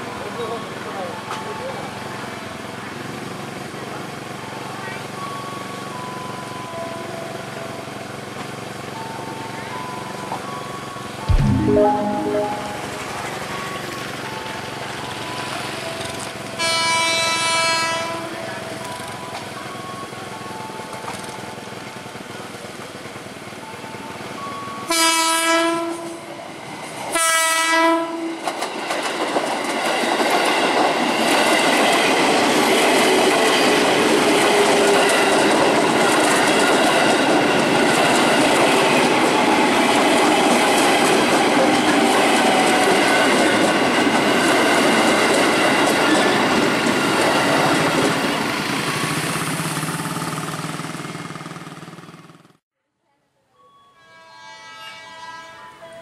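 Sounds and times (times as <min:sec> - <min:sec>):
train horn blasts: 0:16.6 - 0:18.3, 0:24.9 - 0:26.2, 0:27.2 - 0:28.4, 0:53.9 - 0:56.0.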